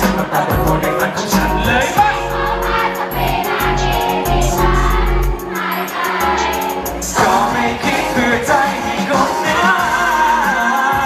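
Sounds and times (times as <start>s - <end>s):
live pop music over speakers: 0.0s - 11.0s
men singing together: 0.0s - 11.0s.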